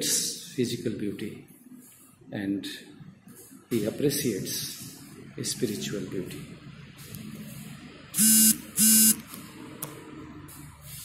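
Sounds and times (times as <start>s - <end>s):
short buzzing beeps: 8.2s - 9.2s.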